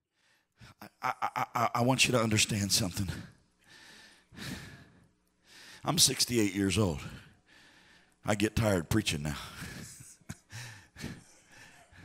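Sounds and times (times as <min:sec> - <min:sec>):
man speaking: 0:01.0 - 0:03.3, 0:05.8 - 0:07.3, 0:08.2 - 0:09.7.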